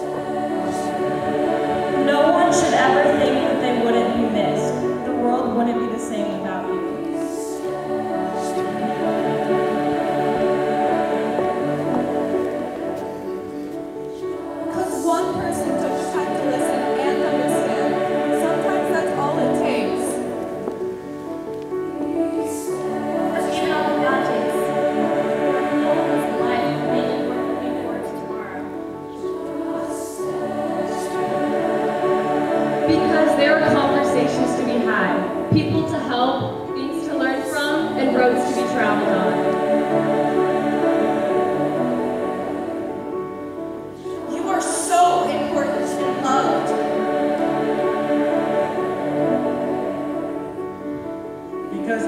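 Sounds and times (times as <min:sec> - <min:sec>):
choir singing held chords: 0:00.0 - 0:51.8.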